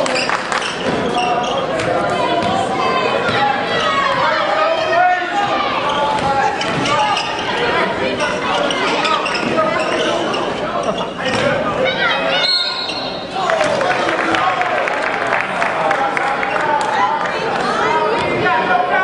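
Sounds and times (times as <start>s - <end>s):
crowd and player voices echoing: 0.0s - 19.0s.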